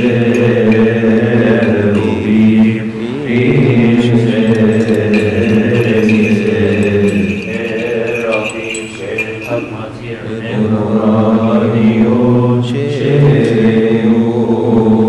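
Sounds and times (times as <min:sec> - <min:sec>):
liturgical hymn chanting: 0:00.0 - 0:15.0.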